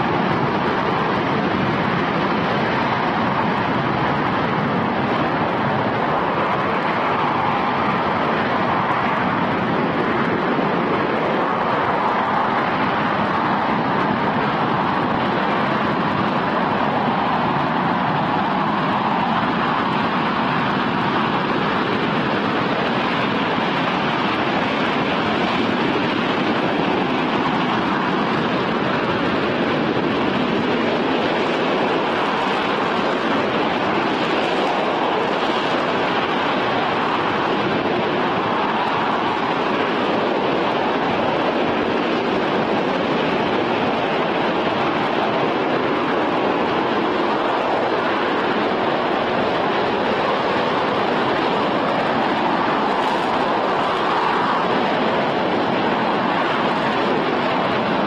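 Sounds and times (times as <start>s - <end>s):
rocket engine roaring: 0.0s - 58.0s.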